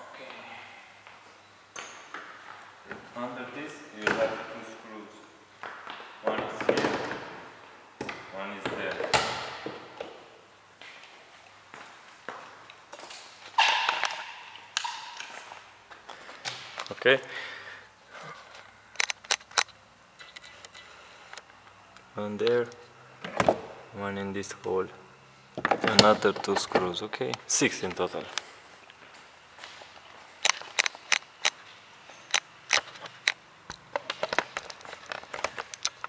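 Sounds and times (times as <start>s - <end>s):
man talking: 3.1s - 5.3s, 6.2s - 7.0s, 8.3s - 9.2s, 16.9s - 17.4s, 22.1s - 22.8s, 23.9s - 25.0s, 25.8s - 28.4s.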